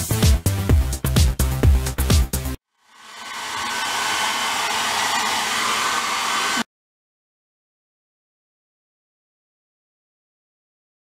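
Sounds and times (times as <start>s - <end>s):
hair dryer blowing: 2.9s - 6.7s.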